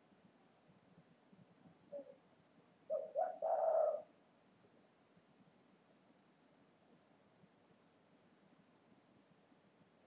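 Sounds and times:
dove cooing: 1.9 - 2.2, 2.9 - 4.2.

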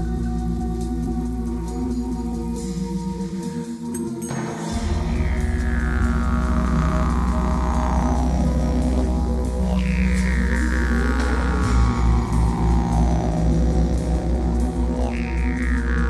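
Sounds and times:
didgeridoo drone: 0.0 - 16.0.

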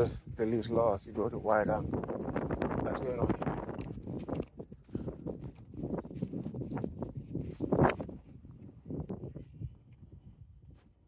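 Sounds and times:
footsteps on sand: 4.0 - 9.4.

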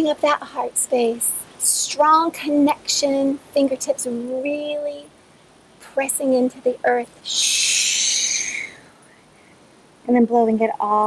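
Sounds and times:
person forcefully exhaling shh: 7.3 - 8.9.

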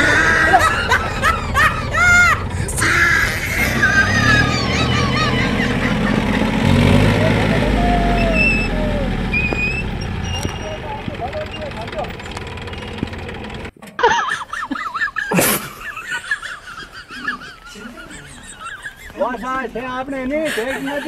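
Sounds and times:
tractor diesel engine running: 0.0 - 13.8
voices: 0.0 - 21.0.

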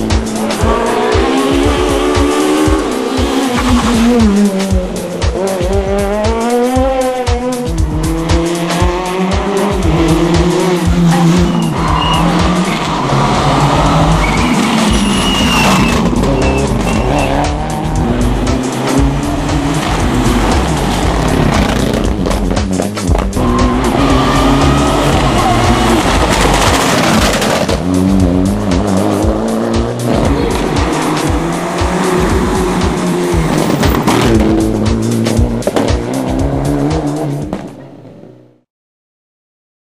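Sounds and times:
rally car engines revving: 0.0 - 38.5
tyres squealing: 11.1 - 17.6.

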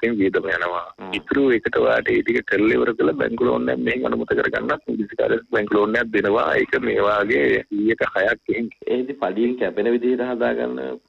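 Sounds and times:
muffled radio talk: 0.0 - 11.0.

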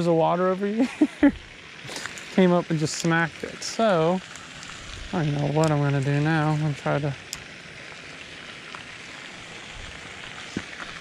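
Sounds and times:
steady outdoor hiss: 0.0 - 11.0.

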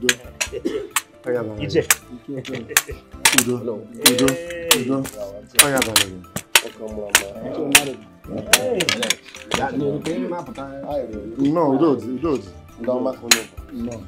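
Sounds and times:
background music: 0.0 - 14.0
men talking: 0.0 - 14.0.

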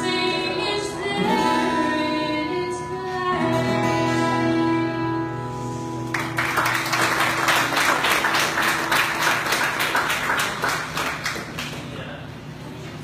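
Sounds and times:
audience clapping: 6.0 - 12.2.

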